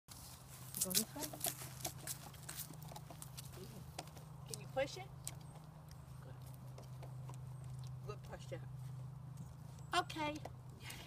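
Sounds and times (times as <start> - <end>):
puppy paws clicking on board: 0.8 - 8.4.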